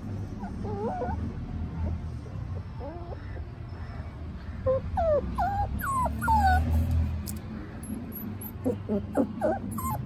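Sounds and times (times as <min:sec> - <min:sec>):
puppy whimpering: 0:00.3 - 0:02.0, 0:04.6 - 0:07.0, 0:07.8 - 0:10.0.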